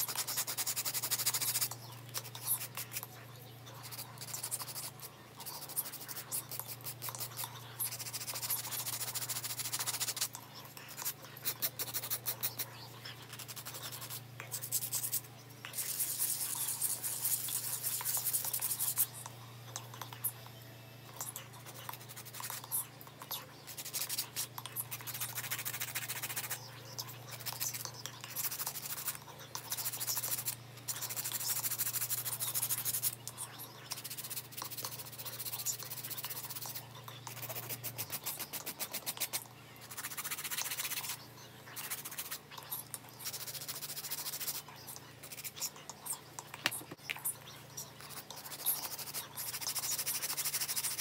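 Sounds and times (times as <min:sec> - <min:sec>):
nail file rasping on nails: 0:00.0 - 0:03.1, 0:03.8 - 0:19.2, 0:23.7 - 0:33.2, 0:33.9 - 0:41.2, 0:41.8 - 0:42.5, 0:43.2 - 0:45.7, 0:48.0 - 0:51.0
faint low hum: 0:00.0 - 0:51.0.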